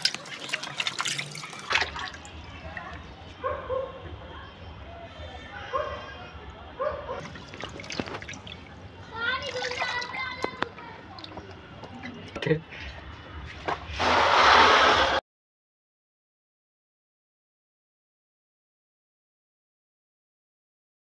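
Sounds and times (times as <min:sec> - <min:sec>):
water sloshing in a plastic tub: 0:00.0 - 0:03.3, 0:07.1 - 0:13.9
rush of noise: 0:14.0 - 0:15.2.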